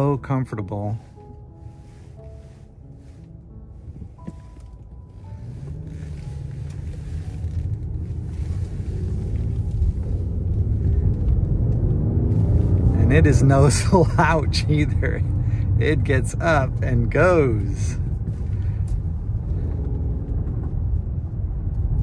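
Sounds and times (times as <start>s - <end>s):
car engine accelerating: 0.0s - 22.0s
road noise: 0.0s - 22.0s.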